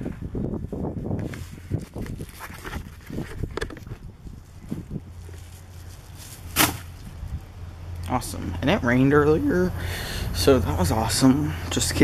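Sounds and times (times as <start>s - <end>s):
camera handling knocks and rustles: 1.8s - 4.1s.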